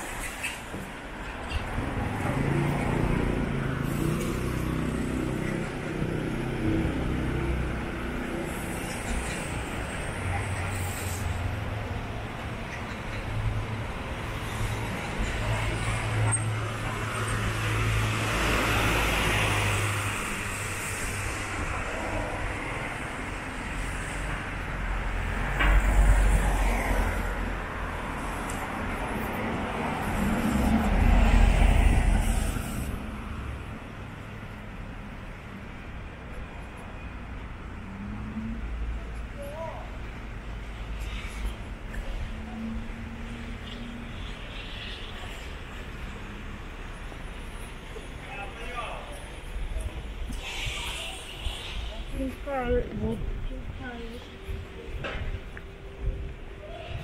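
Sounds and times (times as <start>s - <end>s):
cars passing by: 0.0s - 57.0s.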